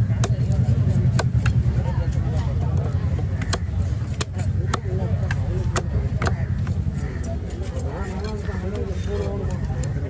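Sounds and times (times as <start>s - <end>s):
knife chopping on wooden block: 0.2s - 1.6s, 3.3s - 6.8s.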